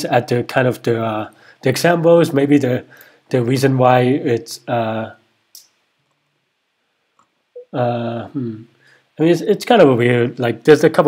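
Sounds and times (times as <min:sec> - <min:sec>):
man saying uh: 0:07.6 - 0:11.0.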